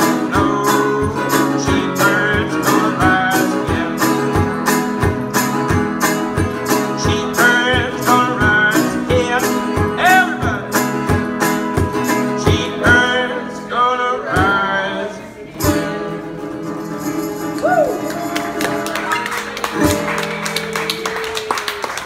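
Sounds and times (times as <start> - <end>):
man singing: 0.0 - 4.8, 6.6 - 11.0, 12.0 - 17.5
acoustic guitar strumming: 0.0 - 21.5
people clapping: 17.4 - 22.0.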